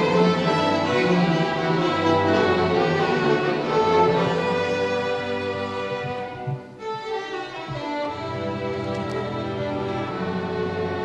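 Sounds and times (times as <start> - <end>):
violins playing: 0.0 - 11.0.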